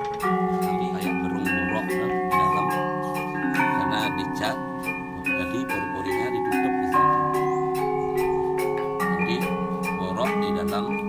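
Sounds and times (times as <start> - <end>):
gamelan iron bars ringing: 0.0 - 11.0.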